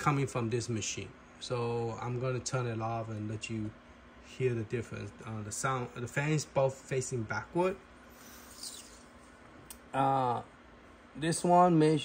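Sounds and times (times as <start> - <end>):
fridge cooling fan humming: 0.0 - 12.0.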